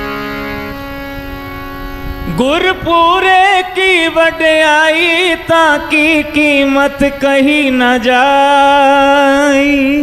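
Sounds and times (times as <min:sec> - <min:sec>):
harmonium chords: 0:00.0 - 0:10.0.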